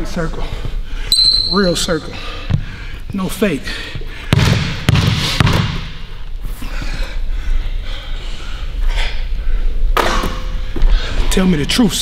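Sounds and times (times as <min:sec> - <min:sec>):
basketball bouncing on hardwood floor: 0:04.3 - 0:05.9.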